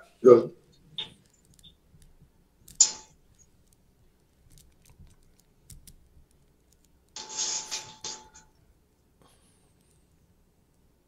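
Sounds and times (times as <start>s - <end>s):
faint clicks: 0.7s - 7.2s
metal utensil scraping pan: 7.2s - 8.5s.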